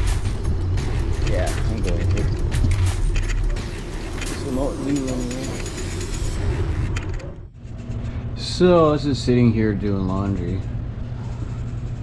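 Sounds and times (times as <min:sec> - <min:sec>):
bicycle clicks and rattles: 0:01.2 - 0:06.2.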